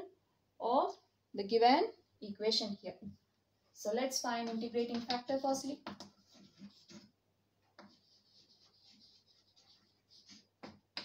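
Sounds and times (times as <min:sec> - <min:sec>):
chalk tapping on a blackboard: 0:04.4 - 0:07.1, 0:07.7 - 0:11.0
chalk scratching on a blackboard: 0:05.3 - 0:11.0.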